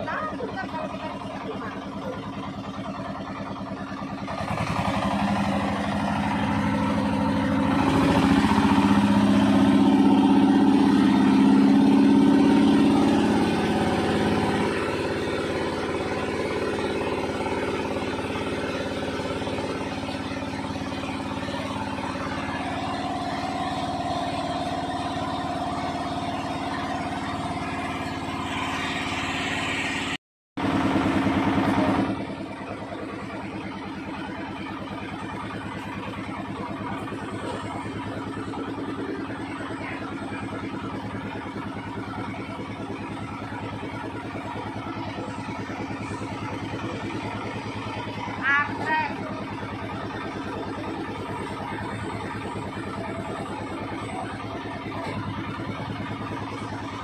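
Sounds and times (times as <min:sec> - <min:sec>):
boat motor running: 0:00.0 - 0:57.0.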